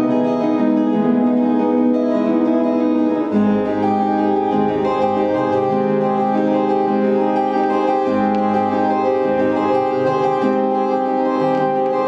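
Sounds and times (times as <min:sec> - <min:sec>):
acoustic guitars playing: 0:00.0 - 0:12.0.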